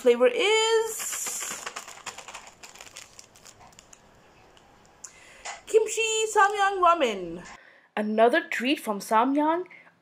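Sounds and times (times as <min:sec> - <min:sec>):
plastic packet crinkling: 0:00.7 - 0:05.0.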